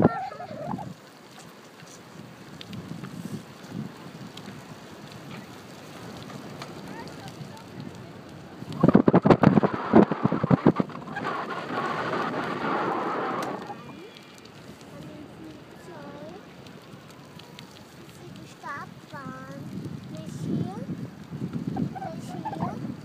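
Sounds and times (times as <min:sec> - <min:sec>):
wind buffeting microphone: 0:00.0 - 0:01.1, 0:02.0 - 0:23.0.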